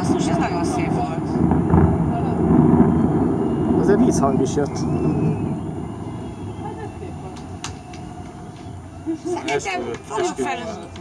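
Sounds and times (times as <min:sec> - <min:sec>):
distant fireworks rumbling: 0:00.0 - 0:11.0.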